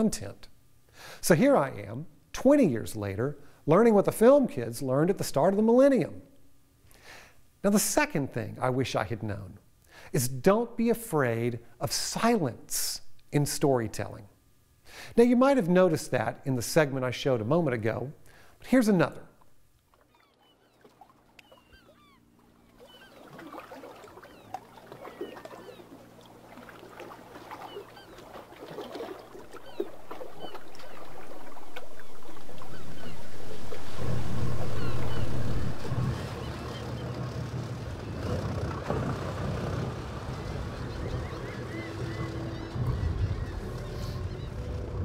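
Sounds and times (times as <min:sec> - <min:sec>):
birds chirping: 0:20.0 - 0:45.0
boat engines droning: 0:20.2 - 0:45.0.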